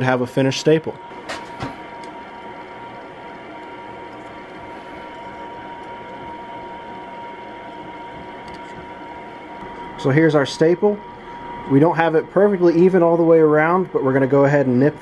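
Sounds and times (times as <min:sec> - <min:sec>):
faint whine: 0:00.0 - 0:15.0
forge burner hissing: 0:00.0 - 0:15.0.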